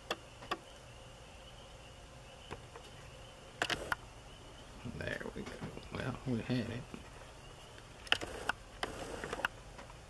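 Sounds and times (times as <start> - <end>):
faint high-pitched whine: 0.0 - 10.0
sharp clicks: 8.0 - 9.9.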